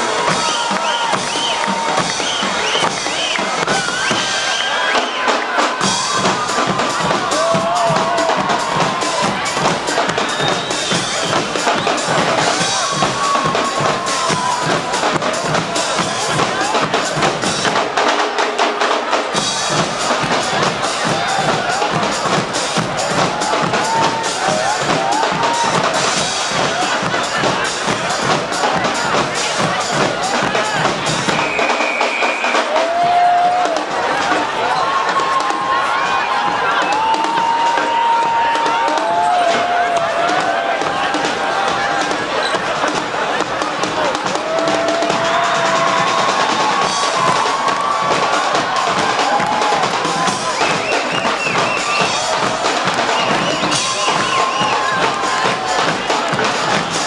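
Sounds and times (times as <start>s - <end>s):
snare drums and cymbals: 0.0s - 57.0s
bass drums: 5.7s - 18.4s, 19.2s - 57.0s.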